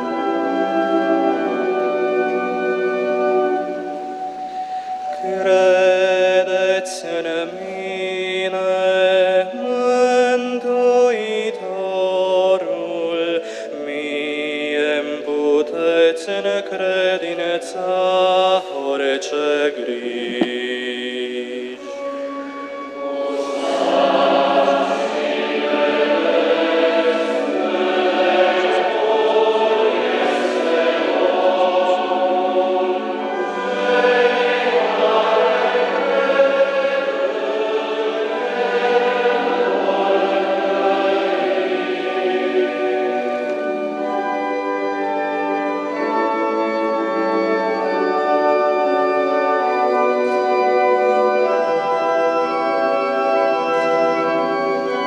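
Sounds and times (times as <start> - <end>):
men's choir singing: 0.0 - 22.2, 23.2 - 55.0.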